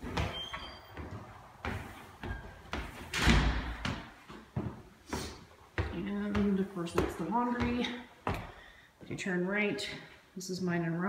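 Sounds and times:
footsteps on wooden stairs: 0.0 - 8.7.

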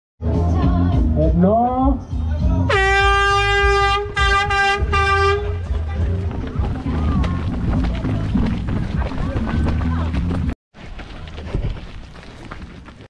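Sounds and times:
air horn blasts: 2.7 - 5.7.

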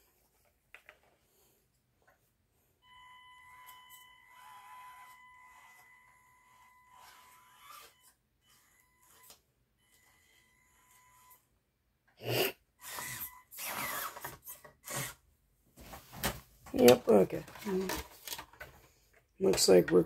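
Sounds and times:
high-pitched electric motor whine: 3.6 - 9.3.

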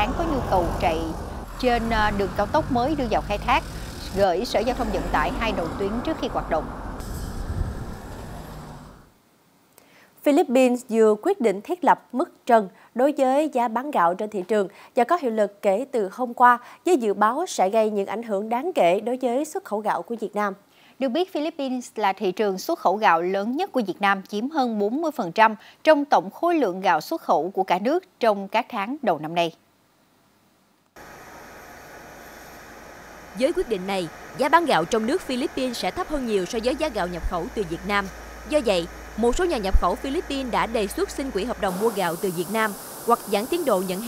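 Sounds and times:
machinery noise with hum: 0.0 - 9.1, 31.0 - 44.0
road traffic rushing past: 0.0 - 9.2, 31.0 - 44.0.

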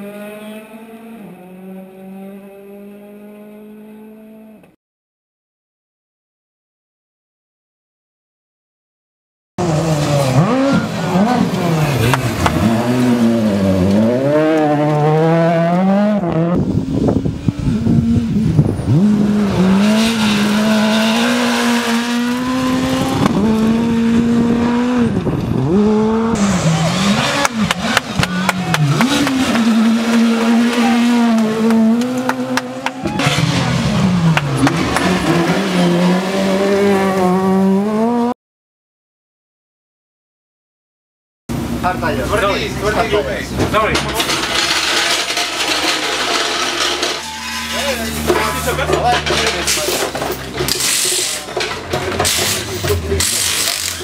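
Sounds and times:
rally car engines revving past: 0.0 - 4.7, 9.6 - 38.4.

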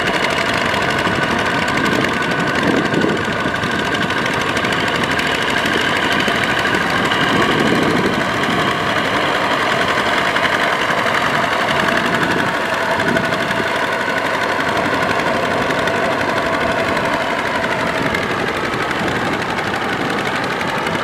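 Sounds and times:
diesel engine knocking: 0.0 - 21.0
wheels churning through mud: 0.0 - 21.0.

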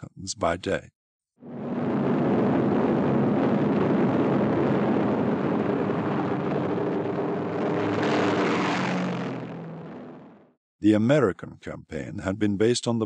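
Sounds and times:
piston aircraft engines running: 1.7 - 10.5.

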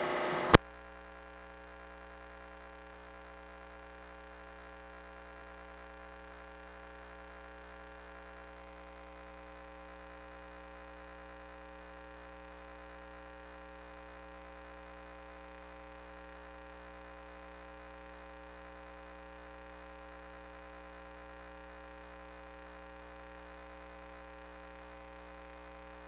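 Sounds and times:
electrical hum with faint buzz: 0.0 - 26.0.

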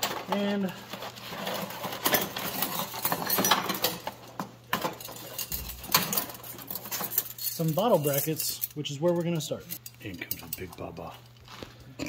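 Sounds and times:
cardboard and plastic bags rustling: 0.0 - 5.1
metal fittings clinking: 4.8 - 11.1.

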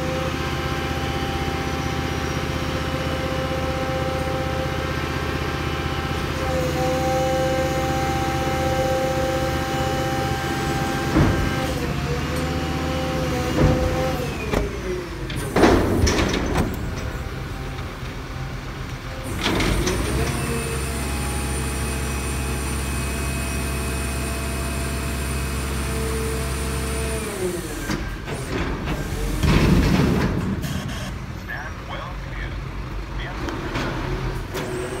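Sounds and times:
truck hydraulics whine: 0.0 - 31.4, 33.5 - 35.0
clunks: 10.9 - 20.6.

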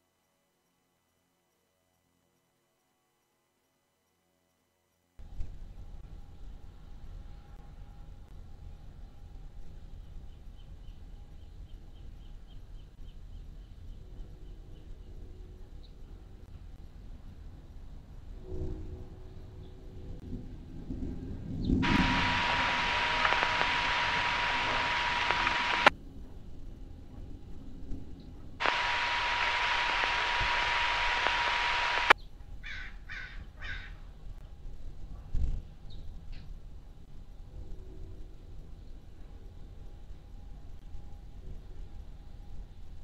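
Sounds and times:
radio click: 21.8 - 25.9, 28.6 - 32.2
radio static hiss: 21.8 - 25.9, 28.6 - 32.2
steady tone: 21.8 - 25.9, 28.6 - 32.2.

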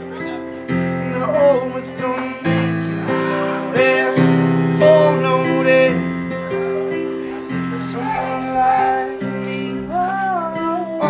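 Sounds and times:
piano chords ringing: 0.0 - 11.0
wordless vocal singing: 0.2 - 11.0.

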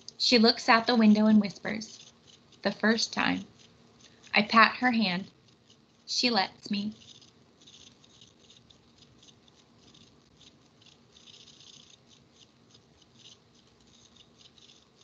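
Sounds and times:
faint high clicks and rustles: 1.2 - 4.5, 5.2 - 15.0.

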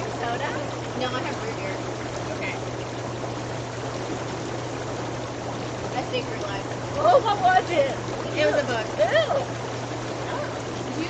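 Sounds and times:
blower motor hum: 0.0 - 11.0
bubbling churning water: 0.0 - 11.0.

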